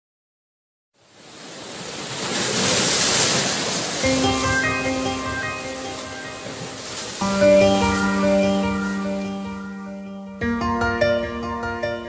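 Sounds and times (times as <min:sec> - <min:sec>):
surf-like rush of noise: 0:01.0 - 0:10.4.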